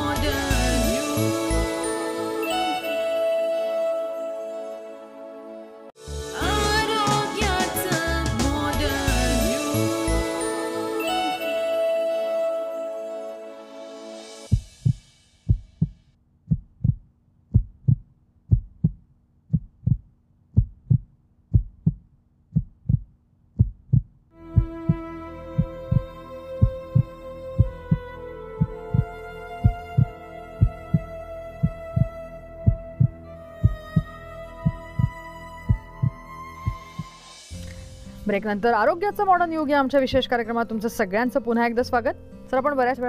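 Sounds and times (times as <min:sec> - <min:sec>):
slow music with held notes: 0:00.0 - 0:14.6, 0:24.4 - 0:43.0
heartbeat thumps: 0:14.5 - 0:37.1.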